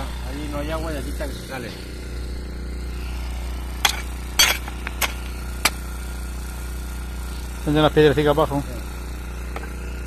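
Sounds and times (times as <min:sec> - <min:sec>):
steady low hum: 0:00.0 - 0:10.0
hoe blade striking stony ground: 0:03.8 - 0:05.8.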